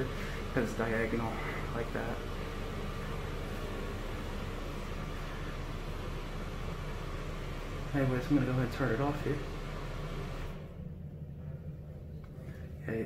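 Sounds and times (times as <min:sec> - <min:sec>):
bathroom exhaust fan running: 0:00.0 - 0:13.0.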